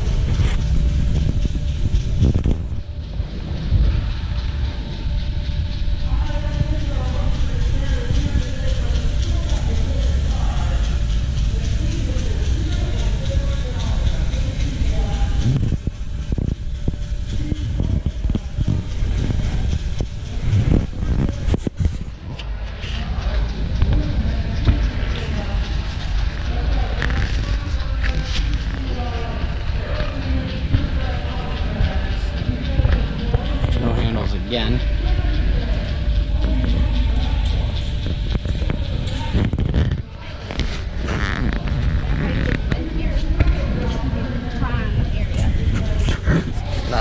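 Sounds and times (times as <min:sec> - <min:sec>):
background music: 0:00.0 - 0:21.0
steady low rumble: 0:00.0 - 0:47.0
indistinct voices echoing: 0:02.6 - 0:47.0.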